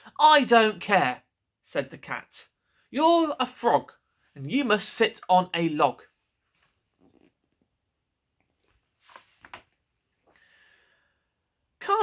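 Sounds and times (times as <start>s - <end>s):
book handling noise: 6.4s - 7.7s, 8.4s - 10.4s.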